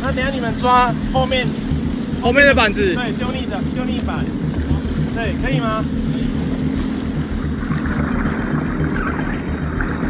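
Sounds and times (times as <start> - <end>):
jet ski engine running: 0.0 - 10.0
water and wind noise: 0.0 - 10.0.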